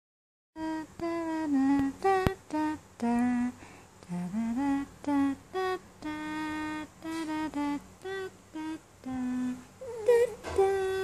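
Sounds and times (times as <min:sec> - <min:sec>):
person humming a slow tune: 0:00.6 - 0:11.0.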